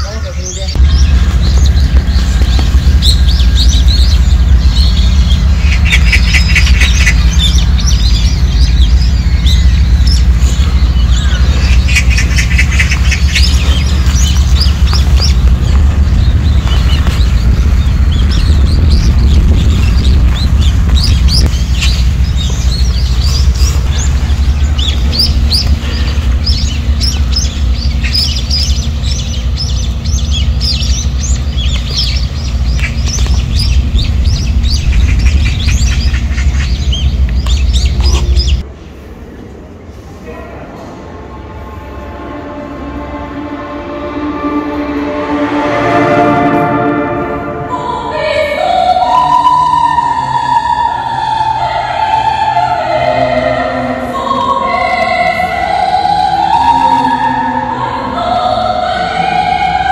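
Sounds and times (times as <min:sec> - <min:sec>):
birds chirping and calling: 0:00.0 - 0:38.6
loud low rumble: 0:00.0 - 0:59.9
rapid buzzing bird trills: 0:00.7 - 0:38.6.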